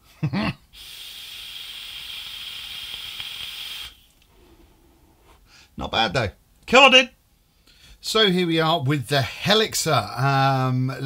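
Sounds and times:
vape hissing: 0.7 - 5.2.

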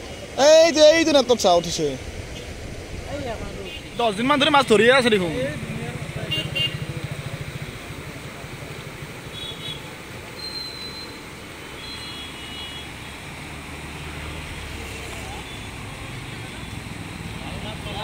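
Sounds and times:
fast-flowing river water: 0.0 - 18.0
traffic noise: 0.0 - 18.0.

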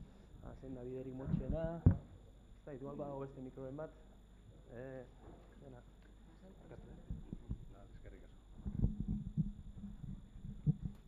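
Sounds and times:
microphone rubbing: 1.1 - 2.2, 6.9 - 11.0
microphone handling knocks: 1.2 - 2.2, 7.0 - 7.8, 8.6 - 11.0.

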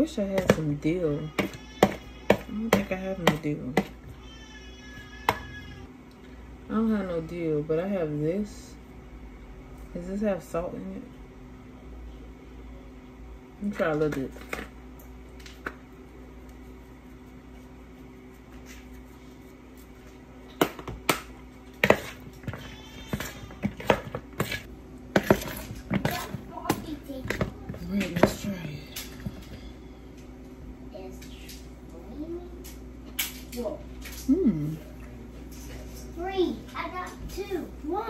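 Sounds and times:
steady low hum: 5.5 - 38.0
spoon stirring in a bowl: 21.6 - 29.7.

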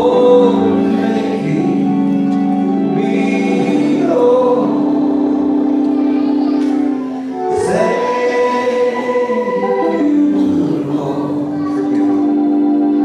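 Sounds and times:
congregation singing gospel song: 0.0 - 13.0.

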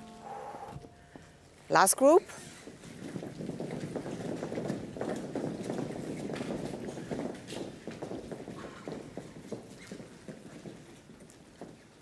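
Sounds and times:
pointe shoes knocking on floor: 3.1 - 11.8.

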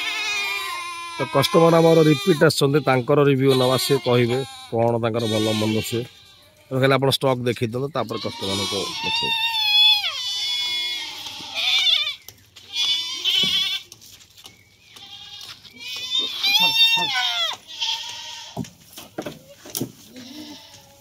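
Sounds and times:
goats bleating: 0.0 - 7.0, 8.0 - 13.9, 14.9 - 18.6, 19.4 - 21.0.

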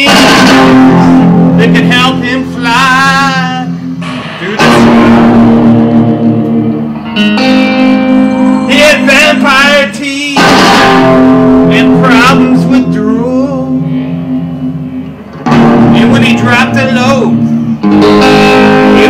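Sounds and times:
guitar chords: 0.0 - 19.0
rock band playing: 0.0 - 19.0
wavering melody with vibrato: 0.8 - 19.0.

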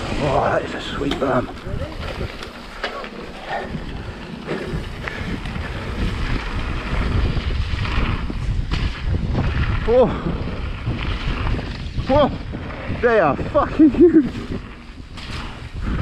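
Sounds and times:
bike tyres on gravel knocking: 0.0 - 16.0
wind rushing over microphone: 0.0 - 16.0.

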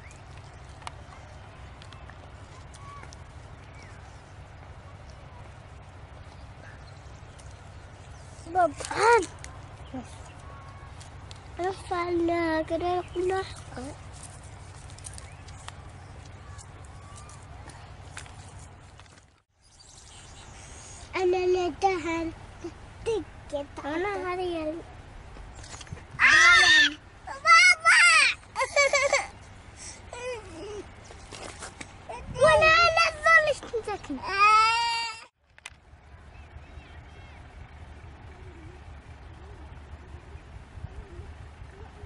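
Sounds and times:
distant wavering calls: 0.0 - 12.0, 12.9 - 18.8, 35.9 - 42.0
steady low rumble: 0.0 - 26.3, 35.4 - 42.0
wind rumble on microphone: 31.9 - 33.0, 36.0 - 42.0.

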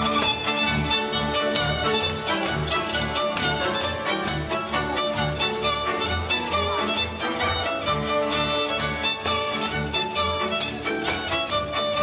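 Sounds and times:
fiddle melody: 0.0 - 12.0.

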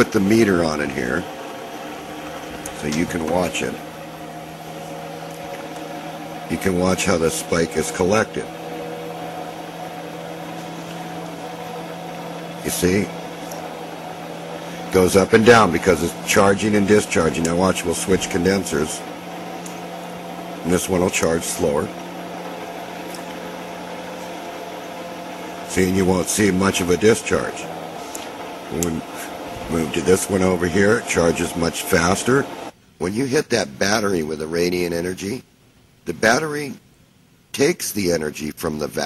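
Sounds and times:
pulse motor humming and whirring: 0.0 - 32.8.

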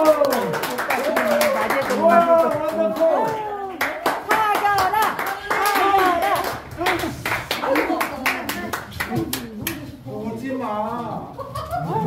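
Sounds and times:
audience clapping: 0.0 - 9.9.

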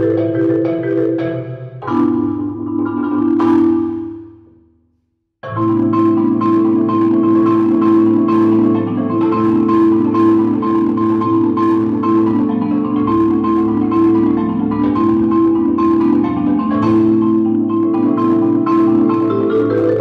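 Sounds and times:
marimba chords: 0.0 - 4.7, 5.4 - 20.0.

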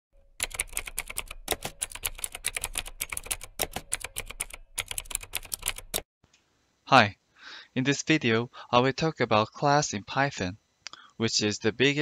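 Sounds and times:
rapid typing key clicks: 0.4 - 6.0.

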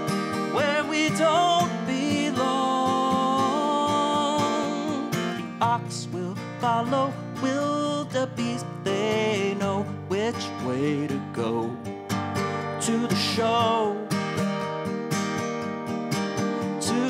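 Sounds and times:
man singing with vibrato: 0.0 - 14.4, 16.7 - 17.0
acoustic guitar strumming: 0.0 - 17.0.

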